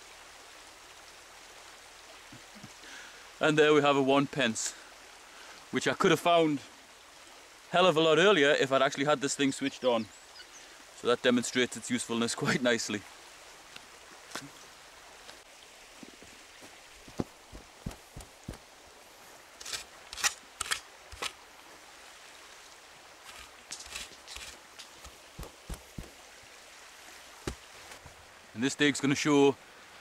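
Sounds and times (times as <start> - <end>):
soil thuds and scrapes: 16.0 - 18.7, 19.6 - 21.4, 23.2 - 26.2, 27.1 - 28.2
spade being handled: 23.2 - 26.2.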